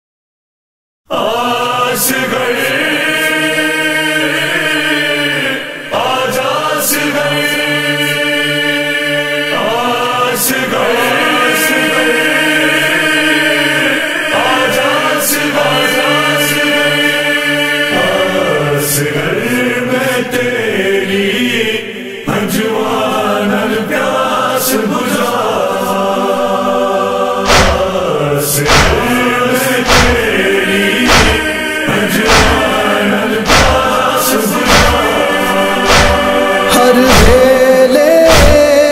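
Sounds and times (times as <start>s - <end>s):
chorus chanting a lament: 1.1s - 38.9s.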